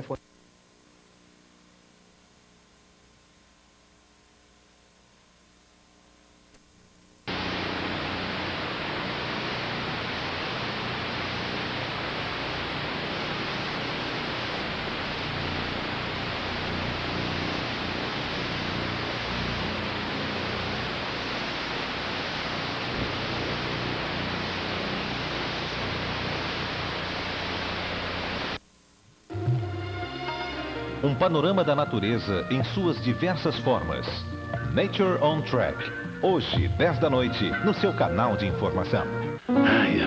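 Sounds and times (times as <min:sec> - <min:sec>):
loud static hiss: 0:00.0 - 0:40.0.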